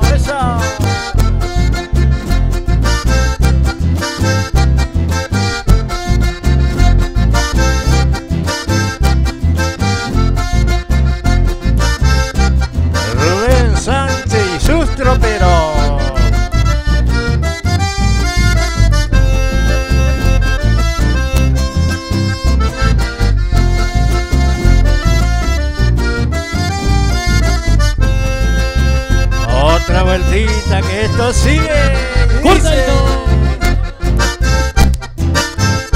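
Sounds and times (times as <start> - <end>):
acoustic guitar: 0.0 - 35.9
button accordion: 0.0 - 35.9
electric bass: 0.0 - 35.9.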